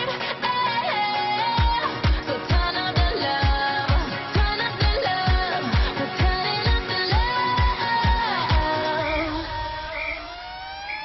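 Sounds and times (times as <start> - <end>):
electronic dance music: 0.0 - 11.0
rising synth sweep: 8.8 - 11.0.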